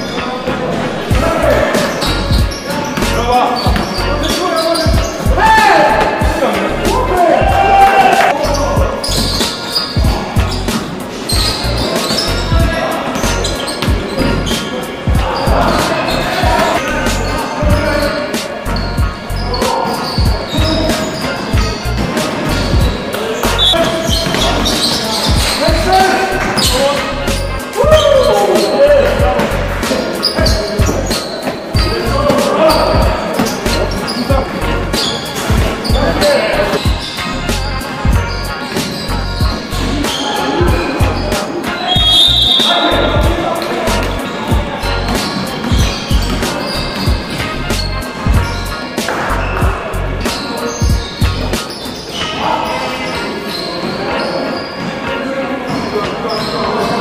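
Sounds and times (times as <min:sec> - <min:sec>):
music: 0:00.0 - 0:57.0
sneakers squeaking: 0:00.0 - 0:57.0
voices: 0:00.0 - 0:57.0.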